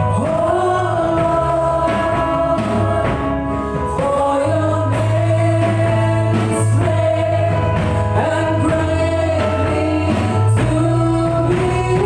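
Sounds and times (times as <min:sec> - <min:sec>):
keyboard accompaniment: 0:00.0 - 0:12.0
women singing in harmony: 0:00.0 - 0:12.0.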